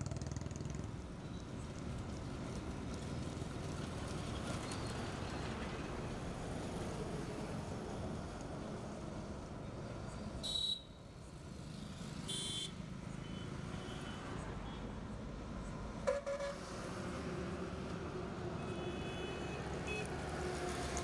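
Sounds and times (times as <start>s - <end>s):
highway traffic rumble: 0.0s - 21.0s
vehicle horn toots: 12.3s - 12.7s.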